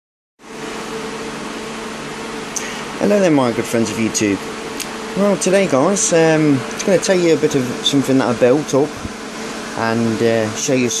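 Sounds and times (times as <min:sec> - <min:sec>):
mechanical whir with low hum: 0:00.4 - 0:11.0.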